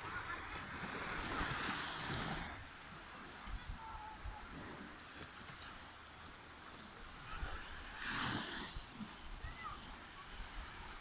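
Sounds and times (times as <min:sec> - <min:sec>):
small waves washing: 0:00.0 - 0:11.0.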